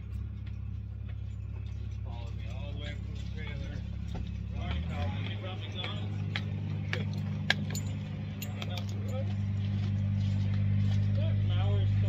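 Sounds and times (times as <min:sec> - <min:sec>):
engine running with low drone: 0:00.0 - 0:12.0.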